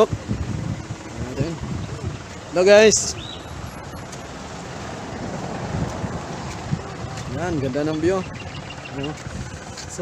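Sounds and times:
wind blowing on microphone: 0.0s - 2.4s, 5.2s - 9.8s.

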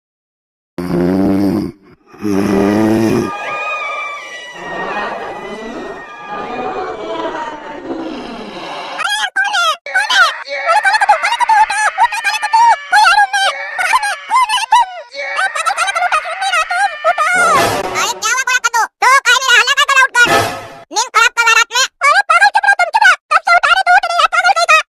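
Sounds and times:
cartoon character snoring: 0.8s - 3.4s
high-pitched cartoon voice chattering: 9.0s - 20.3s, 20.9s - 24.9s.

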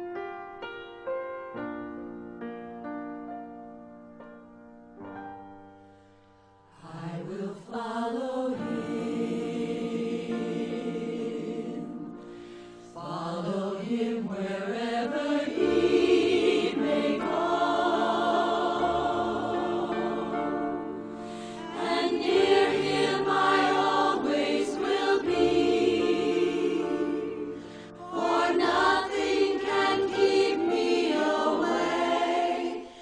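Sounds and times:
choir singing sustained chords: 5.8s - 33.0s.

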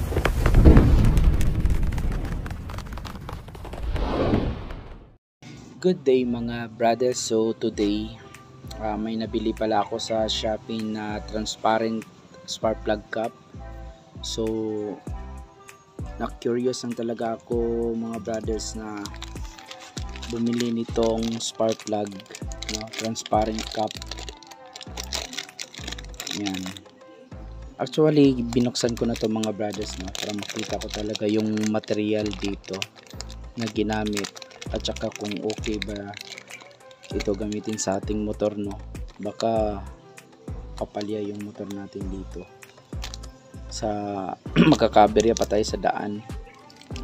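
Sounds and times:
plastic packaging crinkling: 0.0s - 3.8s, 18.0s - 27.0s, 27.8s - 39.5s, 42.6s - 43.3s, 46.5s - 47.0s
deep explosion-like rumble: 0.0s - 5.1s
sharp crackles: 0.0s - 5.2s, 18.0s - 27.0s, 28.1s - 39.5s, 40.8s - 43.4s, 44.6s - 45.6s, 46.4s - 47.0s
music with deep beat: 44.5s - 47.0s.

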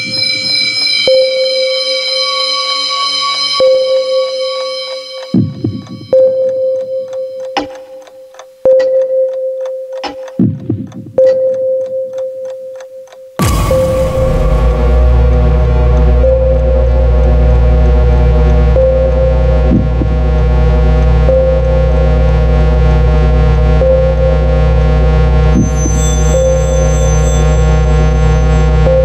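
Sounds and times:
clock-like electronic ticking: 0.0s - 17.4s, 23.8s - 29.0s
sharp drum hit: 13.4s - 16.5s
held mid-pitched tone: 13.4s - 17.4s
high held synth note: 13.4s - 19.4s, 25.0s - 29.0s
low synth drone: 13.4s - 29.0s.

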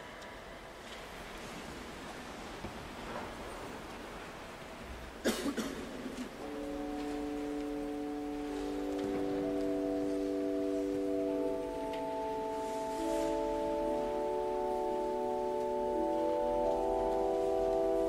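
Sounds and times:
pipe organ sustained chords: 6.4s - 18.0s.

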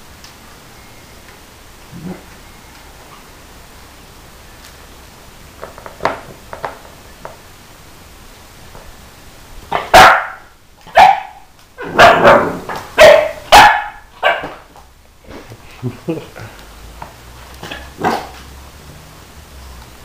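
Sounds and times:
puppy barking: 9.7s - 14.6s, 17.6s - 18.4s.

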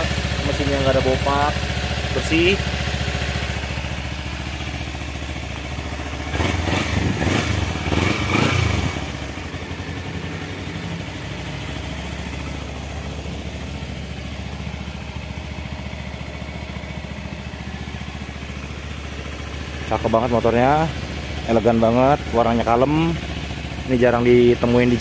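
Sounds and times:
motorcycle engine idling: 0.0s - 25.0s.

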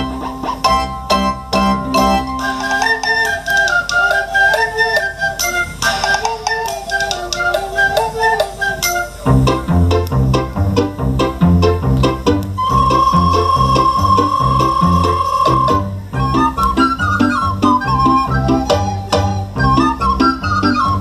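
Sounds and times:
instrumental accompaniment: 0.0s - 21.0s
recorder ensemble playing: 0.0s - 21.0s
bass line: 9.2s - 21.0s.

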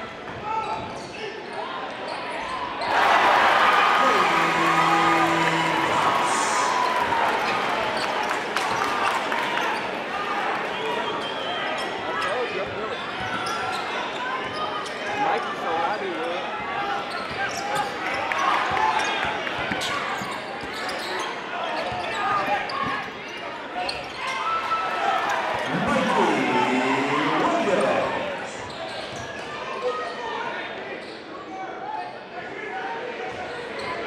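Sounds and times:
crowd chatter: 1.9s - 21.2s, 24.9s - 30.8s.

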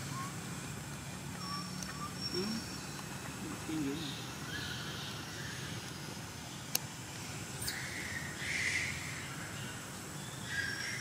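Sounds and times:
low background noise: 0.0s - 11.0s
faint high chirps: 1.1s - 3.1s.

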